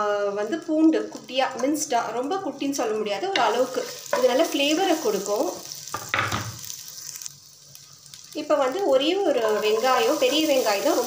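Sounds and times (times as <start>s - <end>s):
butter and garlic sizzling in a pot: 0.0s - 11.0s.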